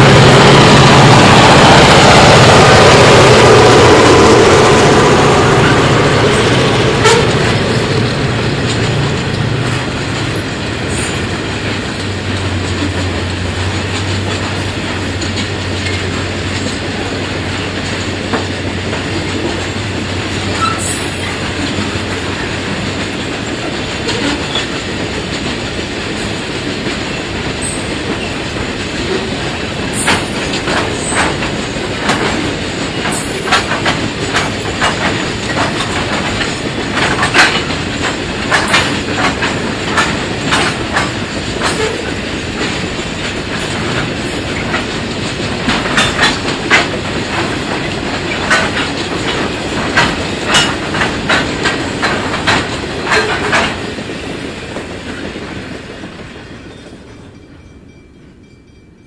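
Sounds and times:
wheels clacking over rail joints: 0.0s - 57.4s
freight train rumbling past: 0.0s - 59.0s
high wheel squeals: 20.6s - 21.4s.

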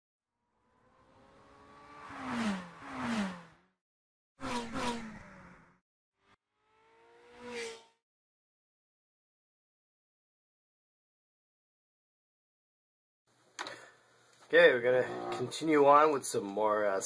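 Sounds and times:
cars speeding past: 0.5s - 3.7s, 4.4s - 5.8s, 6.6s - 8.0s.

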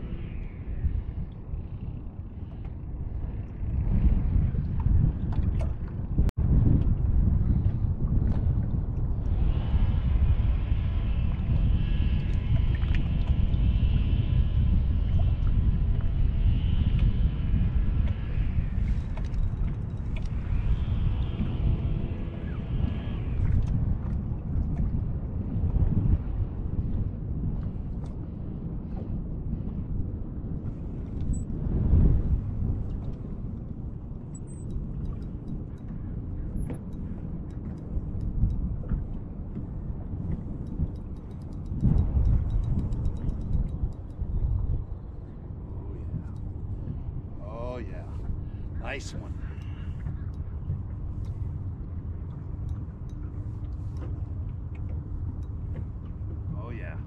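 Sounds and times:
low rumble: 0.0s - 57.0s
wind buffeting microphone: 0.0s - 57.0s.

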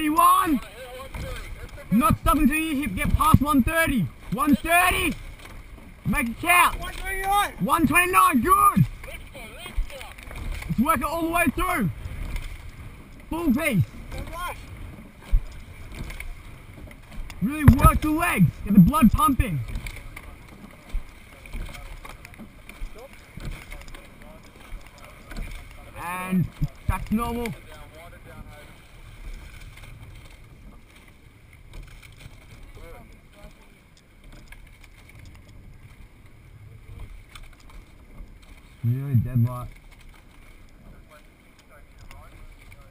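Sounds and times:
wind rumbling on microphone: 0.0s - 23.9s
water rushing: 0.0s - 42.9s
wind on microphone: 1.1s - 4.3s, 13.7s - 19.8s.

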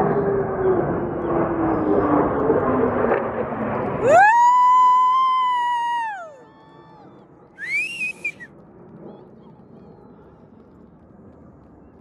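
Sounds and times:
person whistling loudly: 7.6s - 8.5s.

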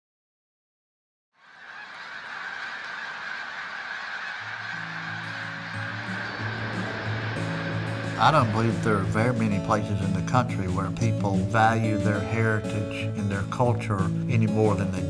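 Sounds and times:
flock of birds calling: 1.4s - 11.2s
low sustained music notes: 4.6s - 14.9s.

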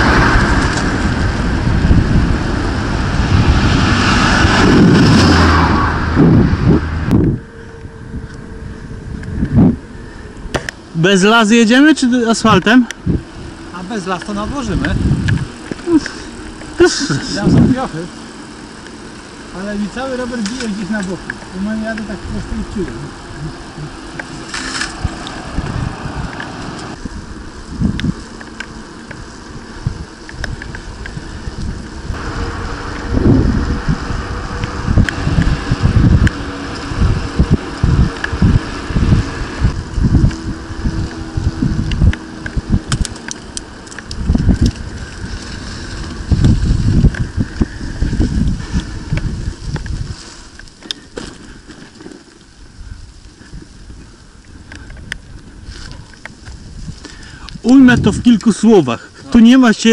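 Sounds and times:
tyres rolling on asphalt: 0.0s - 59.9s
wind buffeting microphone: 0.0s - 59.9s.

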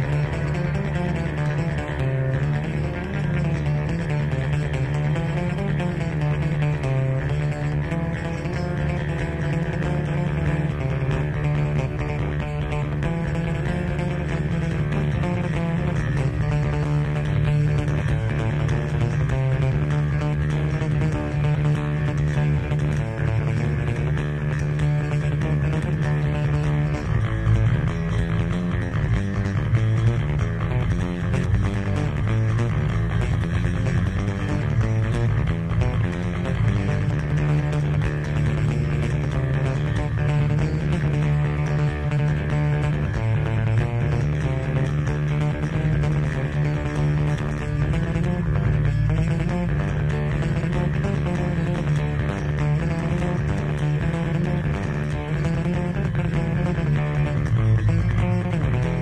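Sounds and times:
electric bass guitar solo: 0.0s - 59.0s.

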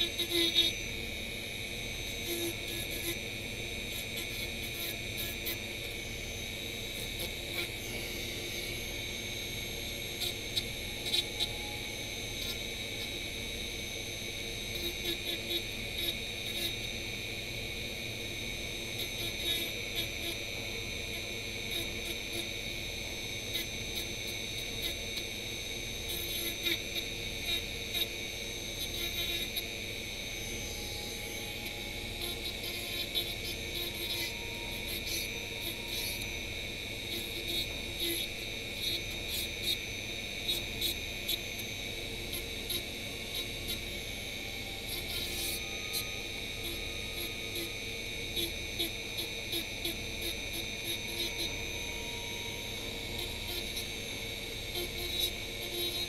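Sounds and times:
rotary tool whine: 0.0s - 56.0s.

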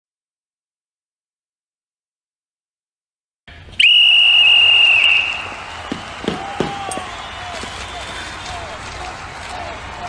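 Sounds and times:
high-pitched whistle blast: 3.8s - 5.6s.

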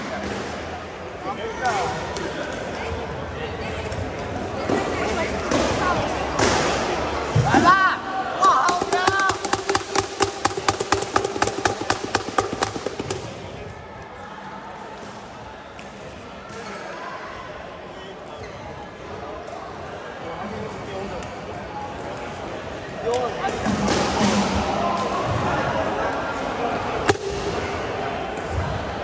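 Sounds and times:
people's voices: 0.0s - 15.2s.

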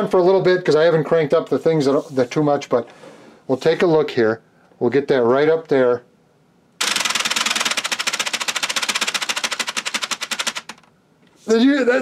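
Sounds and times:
wooden gears clattering: 6.8s - 10.9s.

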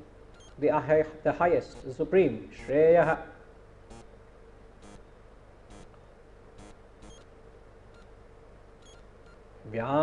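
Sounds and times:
faint steady hum: 0.0s - 10.0s
tiny high chirps: 6.6s - 7.3s, 8.8s - 9.4s.

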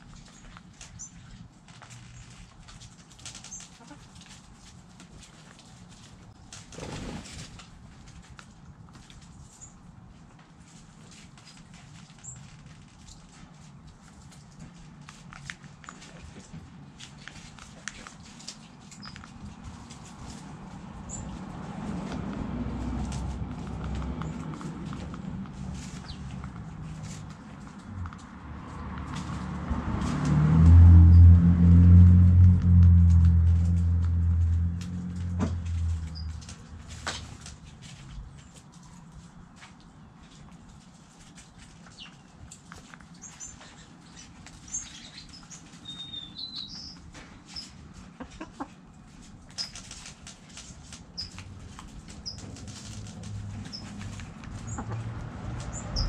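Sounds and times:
pecking and scratching clicks: 11.1s - 29.4s, 49.1s - 56.0s
low steady rumble: 19.5s - 38.2s
hens clucking: 48.0s - 48.9s, 54.4s - 55.3s.

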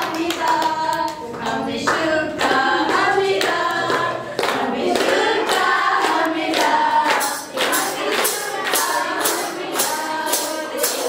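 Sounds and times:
hands clapping to a beat: 0.0s - 11.0s
women and children singing: 0.0s - 11.0s.

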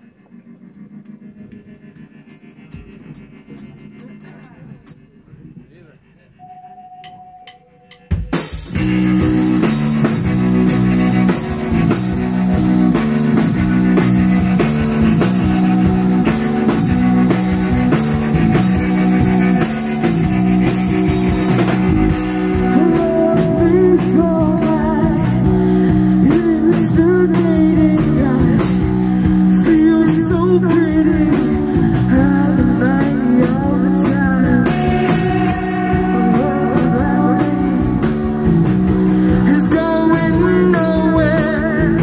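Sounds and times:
rock band playing: 0.0s - 42.0s.

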